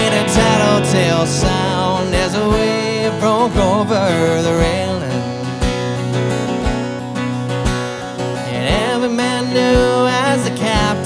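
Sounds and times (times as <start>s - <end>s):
acoustic guitar strumming chords: 0.0s - 11.0s
electric guitar playing: 0.0s - 11.0s.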